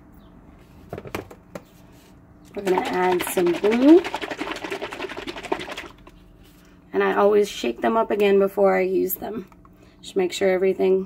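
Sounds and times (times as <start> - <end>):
plastic bottle of paint shaken: 2.5 - 6.2.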